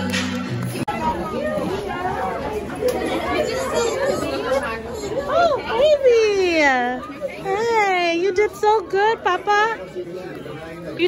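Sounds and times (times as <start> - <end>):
crowd chatter: 0.0 - 11.0
children's voices: 0.8 - 10.1.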